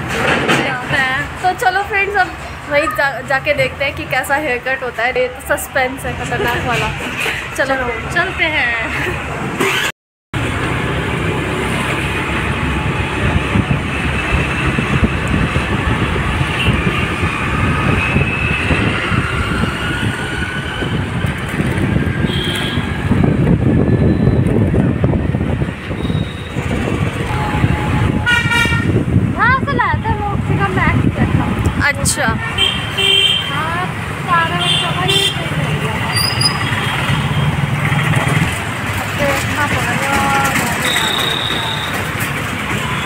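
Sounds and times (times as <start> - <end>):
traffic engines rumbling: 0.0 - 43.0
vehicle horns tooting: 22.2 - 23.0, 26.0 - 26.7, 27.3 - 29.0, 32.4 - 33.7, 34.3 - 37.7, 40.7 - 42.1.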